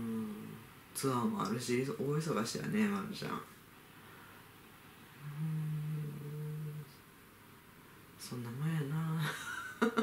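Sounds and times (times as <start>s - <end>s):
person humming: 0.0s - 0.6s, 5.2s - 7.0s.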